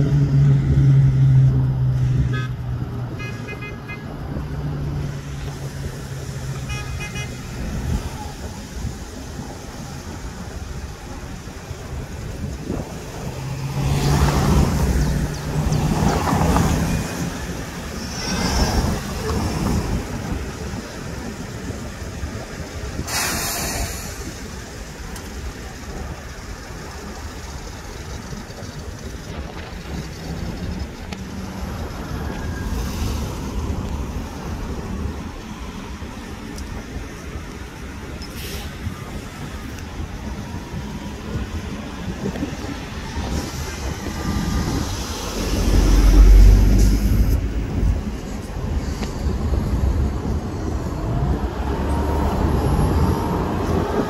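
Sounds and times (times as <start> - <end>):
buses and cars in traffic: 0.0 - 54.0.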